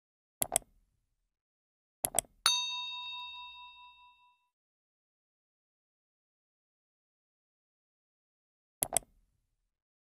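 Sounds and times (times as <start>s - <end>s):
notification bell ding: 2.5s - 4.5s.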